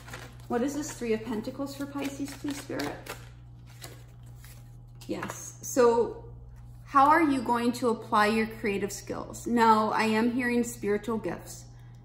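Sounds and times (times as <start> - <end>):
steady low hum: 0.0 - 12.0
cards shuffled by hand: 1.6 - 5.4.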